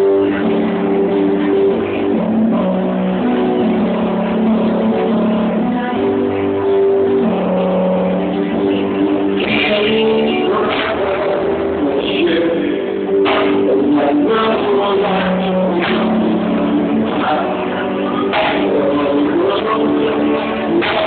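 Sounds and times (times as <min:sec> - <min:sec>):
live band with guitar: 0:00.0 - 0:21.0.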